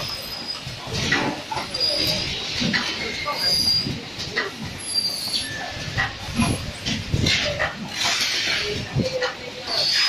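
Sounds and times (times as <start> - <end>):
high-pitched machine squeals: 0.0 - 0.7, 1.6 - 2.3, 3.1 - 4.0, 4.8 - 6.6, 9.7 - 10.0.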